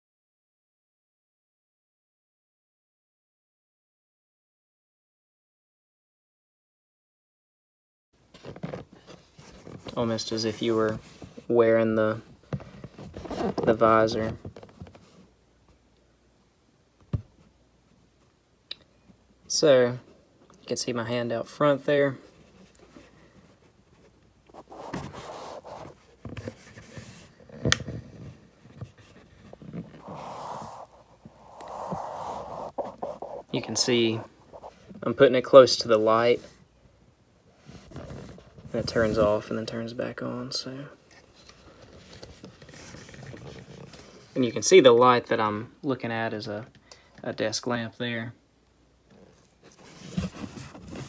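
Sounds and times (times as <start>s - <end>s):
clothing and gear rustling: 22.3s - 35.1s, 49.2s - 51.0s
soft hissing rustles: 28.8s - 36.7s.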